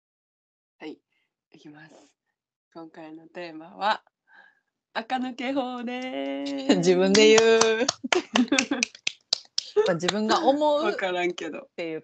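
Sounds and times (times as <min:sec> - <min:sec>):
quick hand clapping: 0:07.1 - 0:10.5
laughter: 0:08.0 - 0:09.0.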